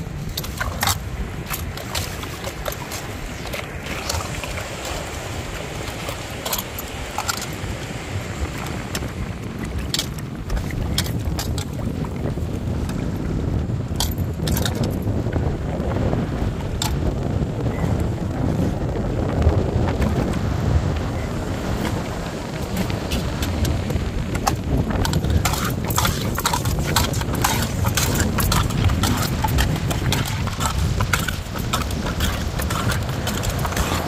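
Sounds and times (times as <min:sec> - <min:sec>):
wind rumble on microphone: 0:00.0 - 0:34.0.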